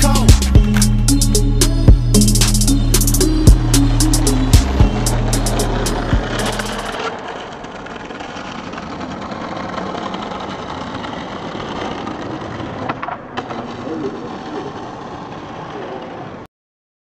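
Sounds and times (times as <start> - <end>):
skateboard wheels rolling on bricks: 0.0 - 1.0, 3.5 - 16.5
hip-hop beat with heavy bass: 0.0 - 7.0.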